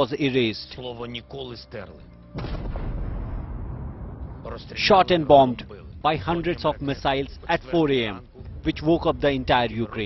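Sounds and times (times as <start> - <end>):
deep rumble of explosions: 2.4 - 7.6.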